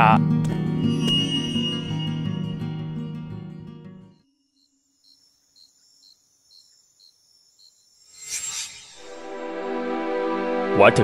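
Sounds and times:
faint high steady trill: 0.8 - 3.3, 4.2 - 9.8
crickets chirping: 4.1 - 9.6.

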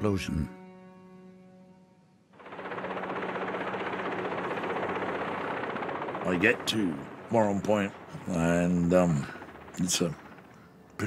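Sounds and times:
helicopter rotor beating: 2.3 - 11.0.

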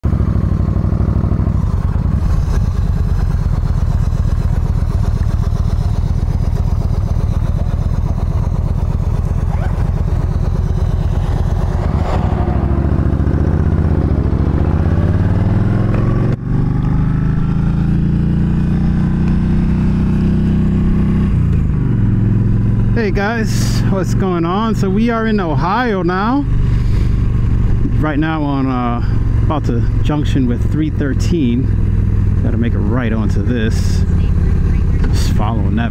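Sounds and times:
motorcycle engine running: 0.0 - 35.9.

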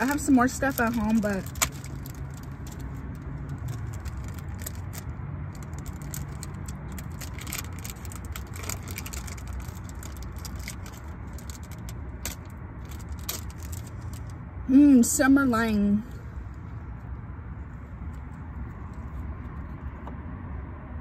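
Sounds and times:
small items clicking and rattling: 0.0 - 14.4
steady low cabin hum: 0.0 - 21.0.

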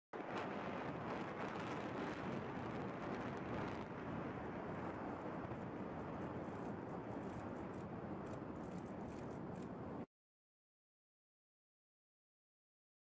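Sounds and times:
faint crackles: 0.2 - 10.1.

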